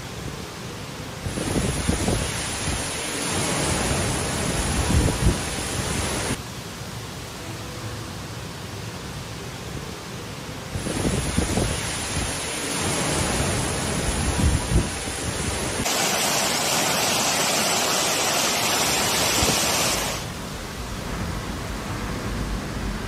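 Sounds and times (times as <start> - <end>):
heavy rain: 0.0 - 23.0
wind gusts buffeting microphone: 1.2 - 6.4, 10.7 - 16.0.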